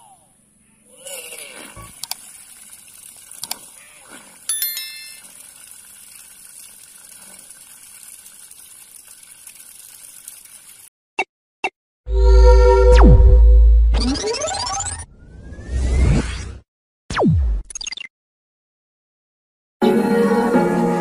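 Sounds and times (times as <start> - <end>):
water pump splashing hiss: 1.7 - 4.5, 5.2 - 10.9
bell-like ding: 4.5 - 5.2.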